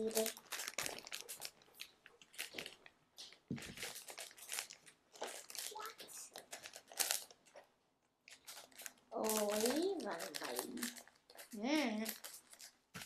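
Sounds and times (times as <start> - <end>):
packaging crinkling and rustling: 0.0 - 13.0.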